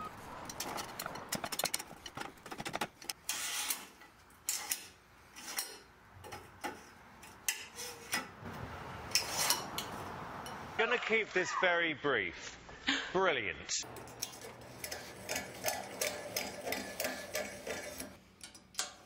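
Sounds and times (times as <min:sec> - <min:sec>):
metal tube scraping in tube: 0:09.1 - 0:09.9, 0:14.0 - 0:18.2
metal pins clicking into holes: 0:14.0 - 0:19.0.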